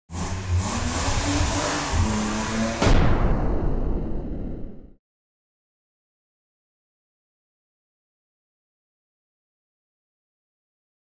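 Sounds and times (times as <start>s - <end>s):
engine revving sound effect: 0.1s - 5.0s
loud hit: 2.8s - 5.0s.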